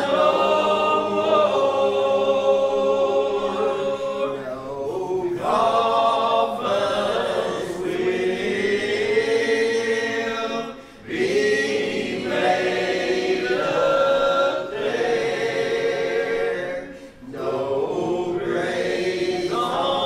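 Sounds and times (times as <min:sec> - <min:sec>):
group singing a hymn: 0:00.0 - 0:20.0.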